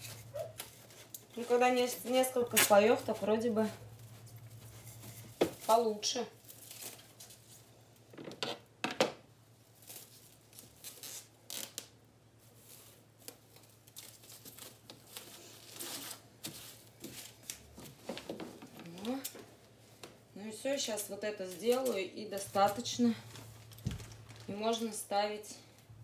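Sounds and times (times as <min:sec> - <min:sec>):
plastic stretch film rustling: 0:00.0 - 0:07.8, 0:09.6 - 0:19.4, 0:21.4 - 0:25.0.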